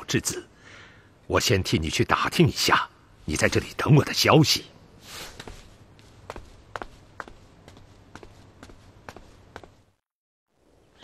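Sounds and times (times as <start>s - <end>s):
soft rustle: 5.0s - 9.9s
light sharp cartoon footsteps: 5.1s - 10.0s.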